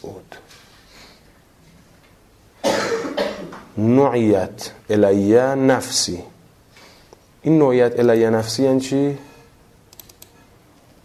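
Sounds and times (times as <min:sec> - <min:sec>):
man coughing: 0:02.6 - 0:03.6.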